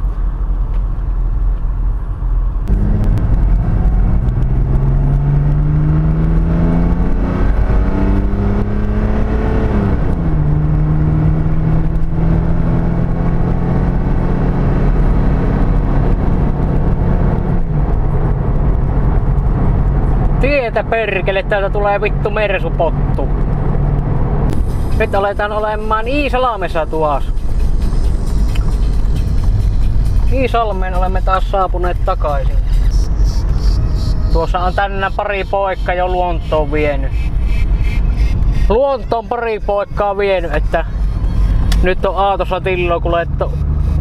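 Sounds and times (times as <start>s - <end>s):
diesel car engine accelerating: 0.0s - 44.0s
road rumble: 0.0s - 44.0s.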